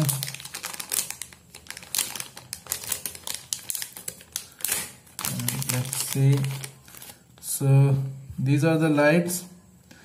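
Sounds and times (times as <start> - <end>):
plastic packet crackling: 0.0 - 7.3
plastic rustling: 0.0 - 7.4.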